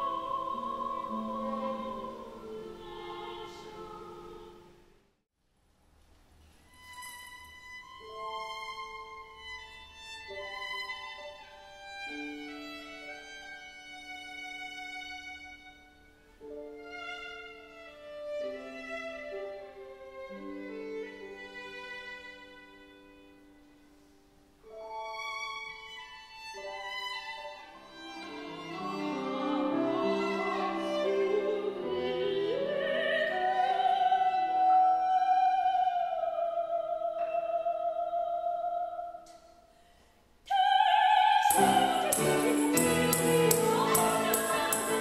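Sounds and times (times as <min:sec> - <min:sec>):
soprano singing: 0:00.0 - 0:04.7, 0:27.5 - 0:39.3, 0:40.5 - 0:45.0
violin sustained notes: 0:24.7 - 0:38.6, 0:40.5 - 0:45.0.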